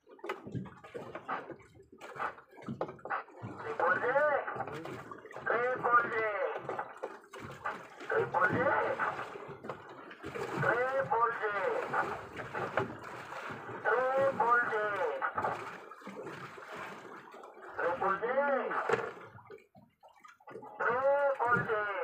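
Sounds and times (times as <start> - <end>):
voices speaking: 3.4 - 6.7, 8.1 - 9.2, 10.6 - 12.0, 13.8 - 15.4, 17.8 - 18.9, 20.8 - 22.0.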